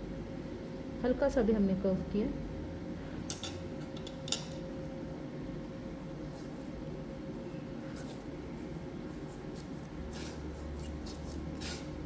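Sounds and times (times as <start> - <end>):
steady low hum: 0.0 - 12.0
metal knife scraping paste: 9.6 - 12.0.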